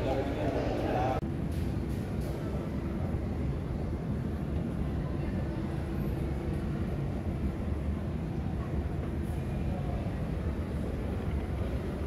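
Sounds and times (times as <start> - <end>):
airport terminal ambience rumble: 0.0 - 12.0.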